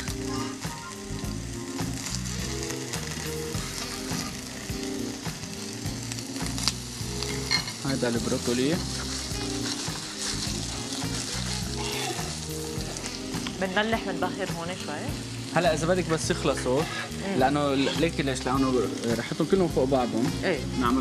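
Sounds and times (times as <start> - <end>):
food sizzling in a frying pan: 0.0 - 21.0.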